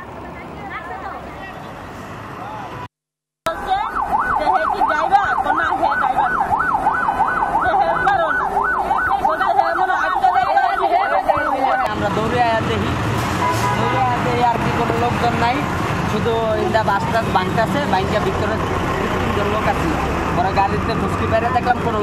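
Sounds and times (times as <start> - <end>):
voices: 0.0 - 2.9, 3.5 - 13.0
emergency siren yelping: 3.5 - 11.9.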